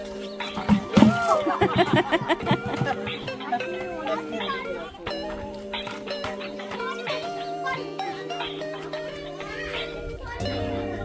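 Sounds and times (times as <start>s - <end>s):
background music with held tones: 0.0s - 11.0s
people and children talking: 0.0s - 11.0s.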